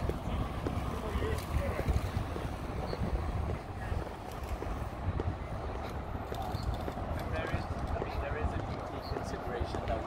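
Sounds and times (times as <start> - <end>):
footsteps on boardwalk planks: 0.0 - 10.0
wind buffeting microphone: 0.0 - 10.0.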